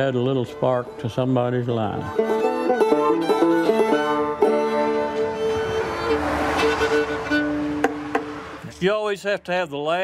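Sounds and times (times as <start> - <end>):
fiddle playing long bowed notes: 0.0 - 8.8.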